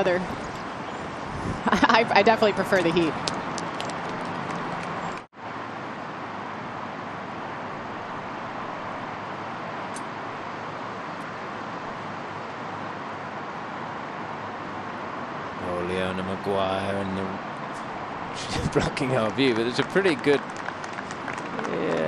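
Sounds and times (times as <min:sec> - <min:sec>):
outdoor background hiss: 0:05.3 - 0:22.0.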